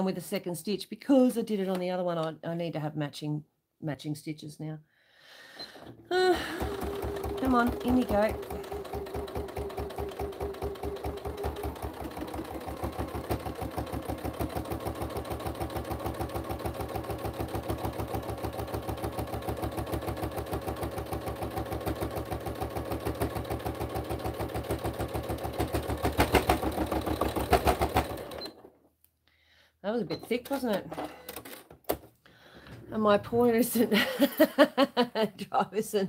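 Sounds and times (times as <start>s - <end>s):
sewing machine stitching: 5.6s - 28.7s.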